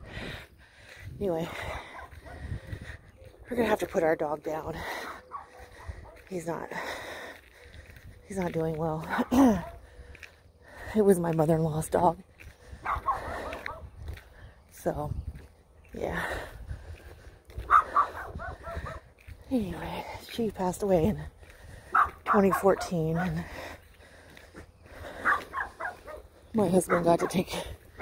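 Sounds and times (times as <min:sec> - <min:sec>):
dog barking: 0:12.8 - 0:13.8, 0:17.7 - 0:19.0, 0:21.9 - 0:22.6, 0:25.2 - 0:26.2, 0:26.9 - 0:27.4.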